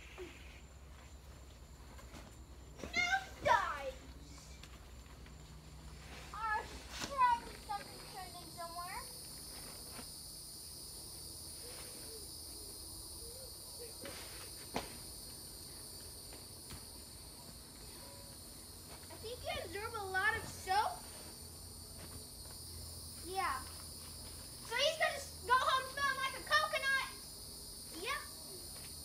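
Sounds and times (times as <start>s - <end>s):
insects droning: 0.0s - 29.0s
child calling and squealing: 2.8s - 4.0s, 28.0s - 28.4s.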